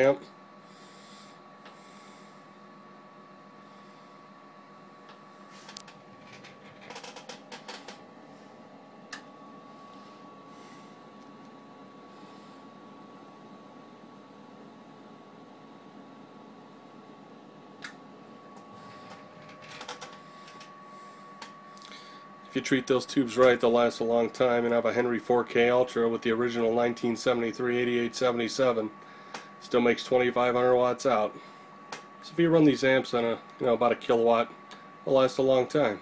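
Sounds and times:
cooling fan running: 0.0 - 36.0
faint steady whine: 0.0 - 36.0.

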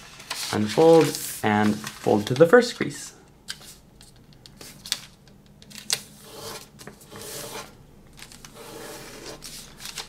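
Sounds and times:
paper rubbing and sliding: 0.0 - 2.5, 6.2 - 10.0.

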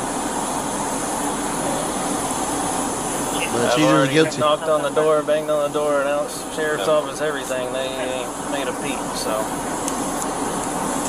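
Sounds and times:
faint low hum: 0.0 - 11.0
steady rushing noise: 0.0 - 11.0.

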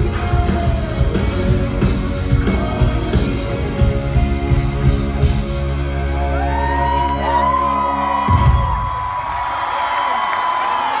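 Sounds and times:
audience screaming and cheering: 0.0 - 11.0.

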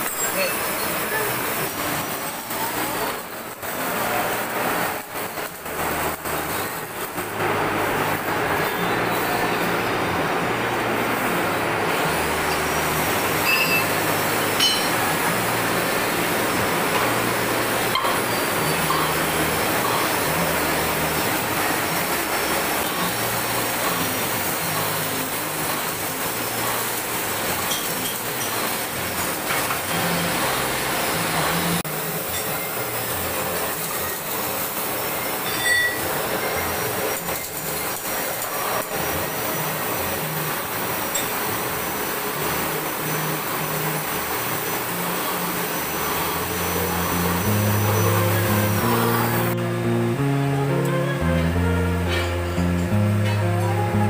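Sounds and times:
metal lathe running: 0.0 - 49.6.

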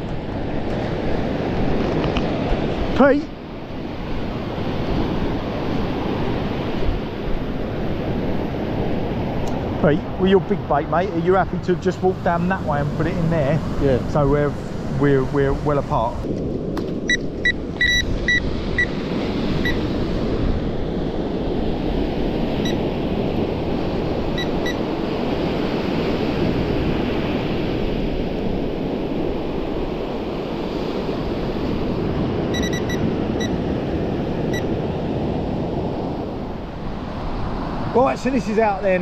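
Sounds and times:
surf rushing on beach: 0.0 - 39.0
electronic alarm short high beeps: 17.1 - 18.9, 32.5 - 33.6.

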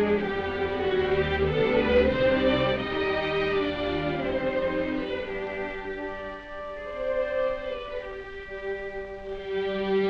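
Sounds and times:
sad orchestral strings: 0.0 - 10.0.

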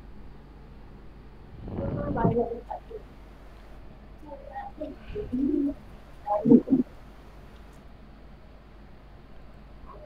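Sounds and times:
bird cooing: 4.8 - 6.9.

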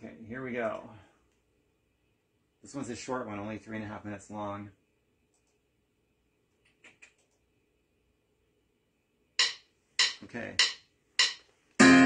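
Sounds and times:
acoustic guitar strum: 11.2 - 12.0.

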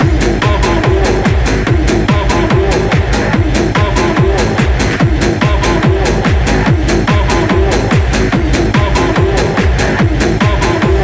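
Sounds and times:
hard trance music: 0.0 - 11.0
hi-hats: 0.0 - 11.0
kick drum: 0.0 - 11.0.

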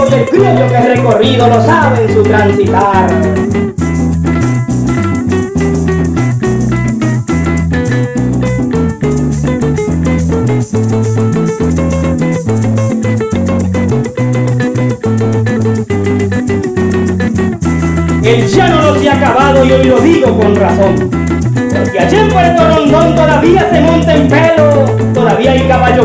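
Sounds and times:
electric bass line: 0.0 - 26.0
maracas shaking: 0.0 - 26.0
strummed cuatro and guitar: 0.0 - 26.0.

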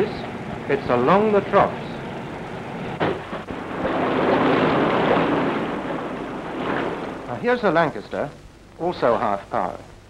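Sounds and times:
water rushing and crashing: 3.0 - 8.0.

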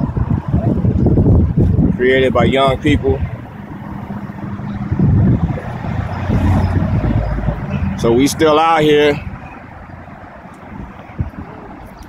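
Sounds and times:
street traffic rumble: 0.0 - 12.0.

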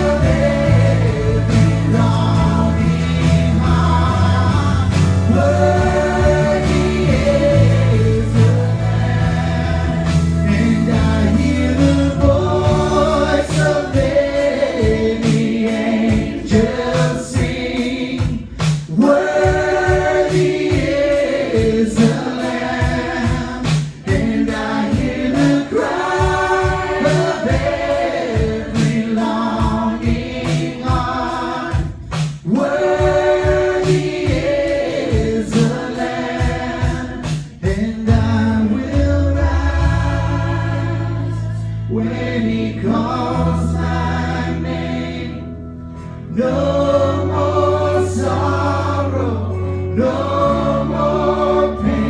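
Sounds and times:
steady drum beat: 0.0 - 45.4
guitar: 0.0 - 52.0
voices singing together: 0.0 - 52.0.

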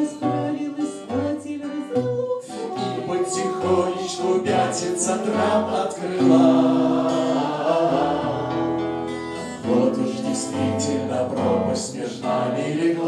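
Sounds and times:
acoustic guitar: 0.0 - 13.0
group of people singing: 0.0 - 13.0.

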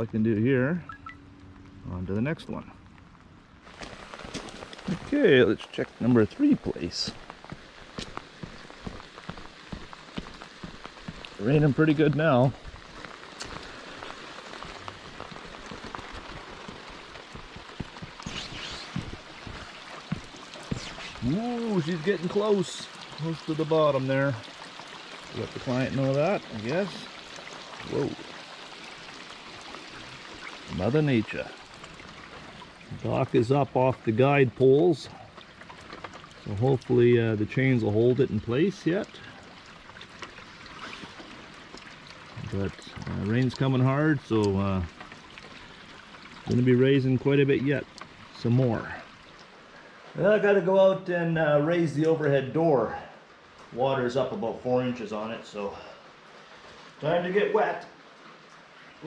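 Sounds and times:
rain pattering on concrete and water: 0.0 - 59.0.

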